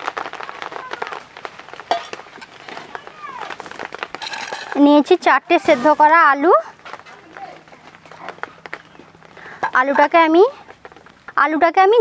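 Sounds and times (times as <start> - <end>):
woman speaking: 4.8 - 7.6, 9.7 - 10.6, 11.4 - 12.0.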